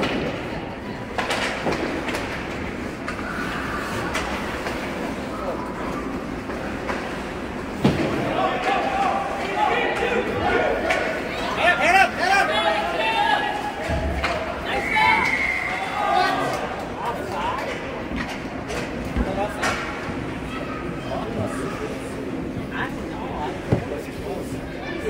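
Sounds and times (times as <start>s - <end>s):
rink crowd din: 0.0s - 25.0s
voices shouting: 8.2s - 17.5s.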